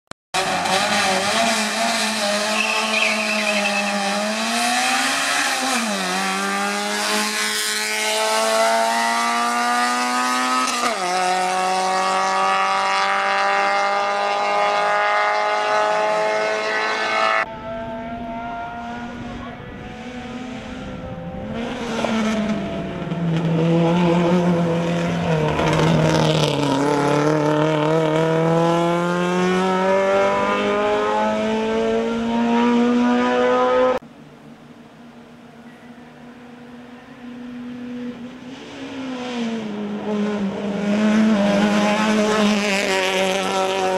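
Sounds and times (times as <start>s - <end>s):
race car engine accelerating: 0.4s - 34.0s, 36.2s - 43.9s.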